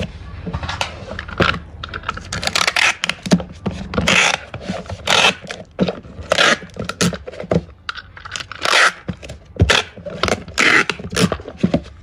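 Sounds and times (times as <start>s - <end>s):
packing tape rasping off roll: 2.0s - 7.4s, 8.3s - 11.6s.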